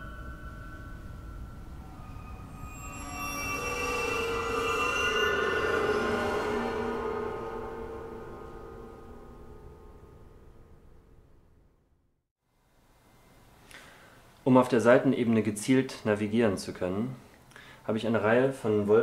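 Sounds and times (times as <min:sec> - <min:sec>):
bowed piano strings droning: 0:00.0 - 0:11.6.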